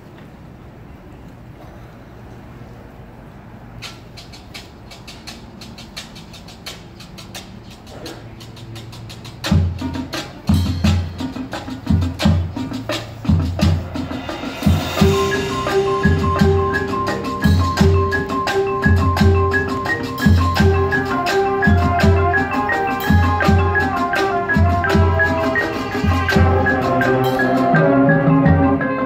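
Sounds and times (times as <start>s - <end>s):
rapid percussion clicks: 3.8s - 28.0s
mallet keyboard notes: 9.4s - 29.0s
cymbal wash: 13.6s - 28.3s.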